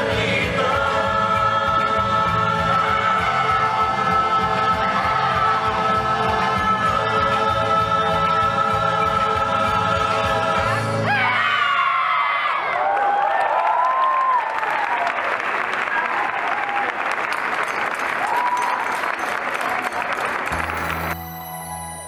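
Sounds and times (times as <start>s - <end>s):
dance music: 0.0s - 11.4s, 20.5s - 22.0s
audience applause and cheers: 2.4s - 7.8s, 11.0s - 22.0s
soft keyboard music: 20.5s - 22.0s.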